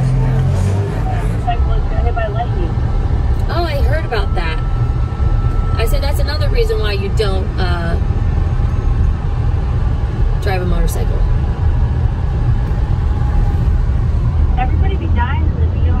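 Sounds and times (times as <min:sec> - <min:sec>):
car cabin road and engine rumble: 0:00.0 - 0:16.0.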